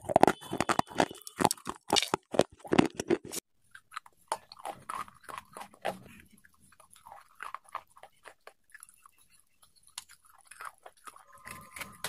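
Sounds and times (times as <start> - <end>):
crunchy biting and chewing: 0.0 - 12.0.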